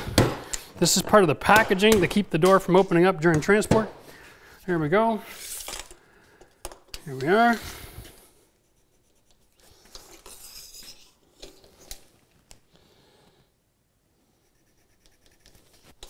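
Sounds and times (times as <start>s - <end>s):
pencil scratching on wood: 14.4s - 16.0s.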